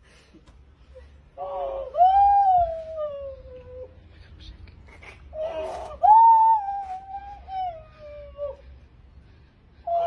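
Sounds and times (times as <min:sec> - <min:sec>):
cry: 0:01.3 - 0:04.0, 0:05.0 - 0:08.9.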